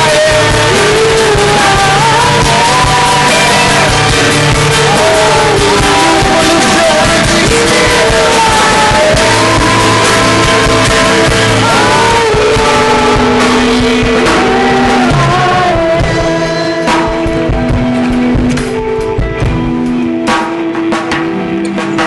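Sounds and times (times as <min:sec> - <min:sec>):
voices singing held notes: 0:00.0 - 0:18.3
live worship band: 0:00.0 - 0:22.0.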